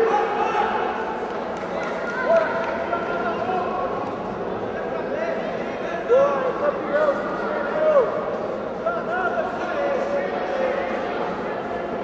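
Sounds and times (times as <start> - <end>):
voices shouting in a hall: 0.0 - 12.0.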